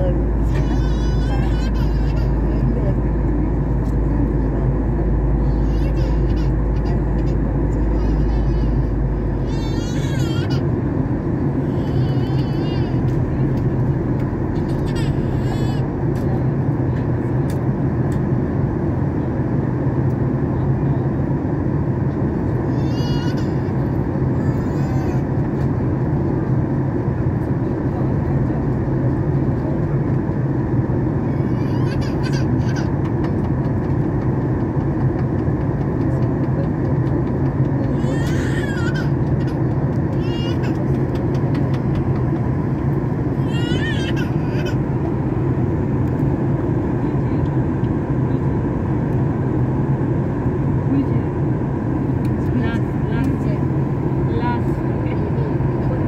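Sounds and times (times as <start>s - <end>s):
deep low hum: 0.0s - 21.0s
airliner cabin engine rush: 0.0s - 56.0s.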